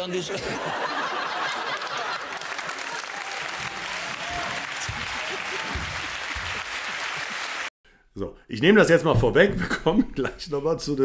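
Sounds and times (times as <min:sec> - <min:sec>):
studio audience applauding: 0:01.0 - 0:07.7.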